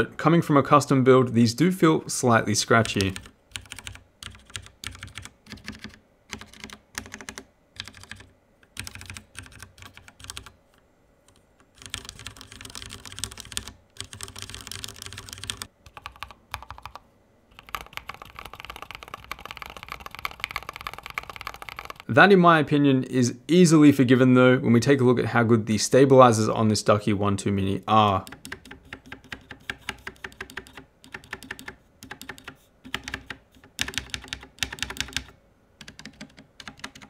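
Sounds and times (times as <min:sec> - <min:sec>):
mechanical keyboard typing: 0:02.7 - 0:10.6, 0:11.3 - 0:22.1, 0:27.9 - 0:37.0.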